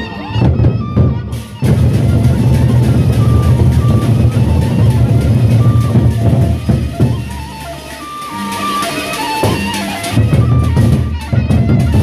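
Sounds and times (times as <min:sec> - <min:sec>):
barrel drums beaten fast: 0:00.4 - 0:12.0.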